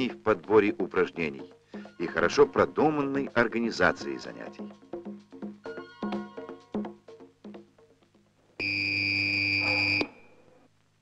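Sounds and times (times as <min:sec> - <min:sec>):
shrill buzzer: 0:08.6 - 0:10.3.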